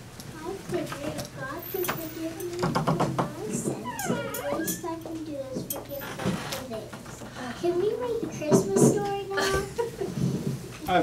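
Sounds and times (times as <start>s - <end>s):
high-pitched voices: 3.4s - 5.1s.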